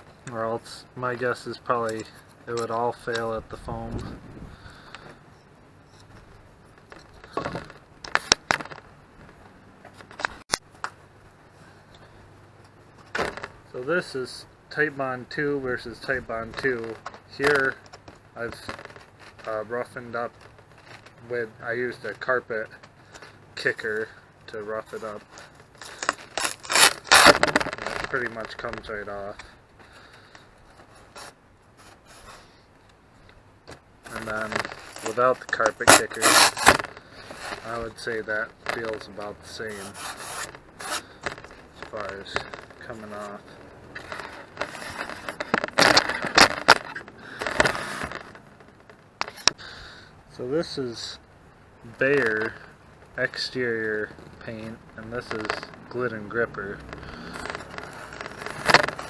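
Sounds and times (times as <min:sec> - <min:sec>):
rubbing and rustling of fabric and foam: 0:15.7 - 0:22.6, 0:23.2 - 0:32.7, 0:34.0 - 0:49.6, 0:51.9 - 0:59.0
short scrapes: 0:34.1 - 0:48.4, 0:56.6 - 0:59.0.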